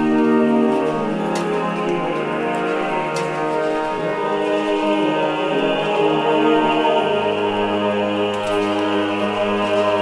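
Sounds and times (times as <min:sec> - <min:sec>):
vocal ensemble singing: 0:00.0 - 0:10.0.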